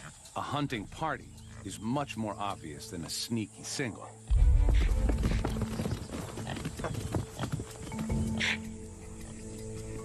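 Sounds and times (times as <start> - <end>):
hooves drumming: 0.0 - 10.0.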